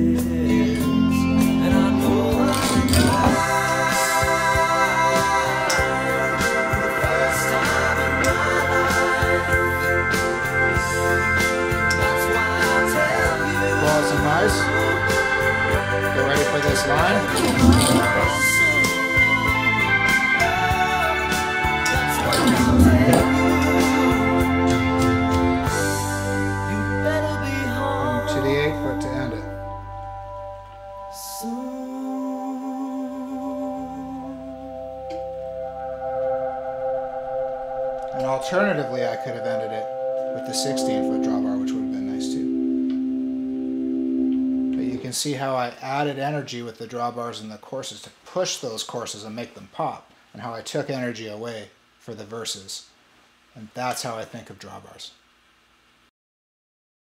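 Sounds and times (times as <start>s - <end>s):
pop song with guitar and vocals: 0.0s - 29.8s, 31.1s - 34.8s
organ sustained chords: 0.0s - 45.5s.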